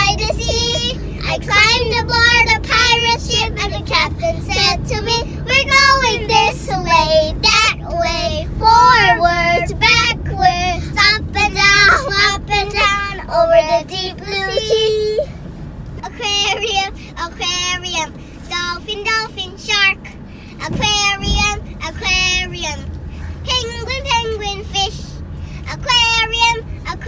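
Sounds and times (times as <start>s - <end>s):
girls singing: 0.0s - 15.3s
car cabin rumble: 0.0s - 27.0s.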